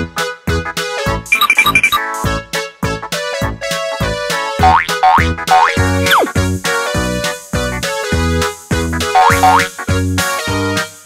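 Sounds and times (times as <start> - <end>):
playful plucked background music: 4.2 - 8.1, 9.0 - 9.9
boing-like swoops: 4.8 - 6.3, 9.2 - 9.7.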